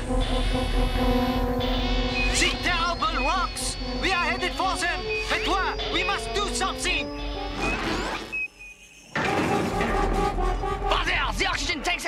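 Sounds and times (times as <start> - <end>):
background music chords: 0.0 - 8.6.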